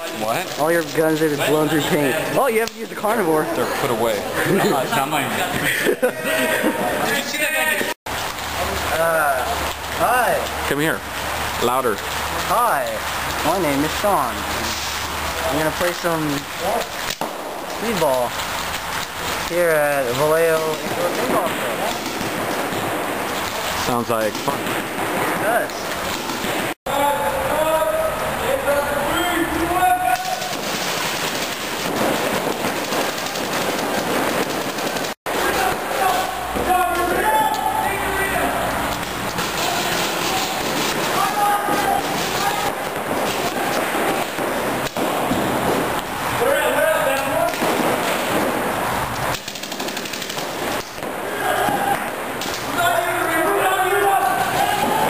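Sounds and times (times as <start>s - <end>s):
players shouting: 0.0s - 8.0s, 26.9s - 31.2s, 35.3s - 48.5s, 50.7s - 55.0s
paintball markers firing: 30.1s - 36.2s, 38.9s - 45.4s, 49.3s - 52.7s.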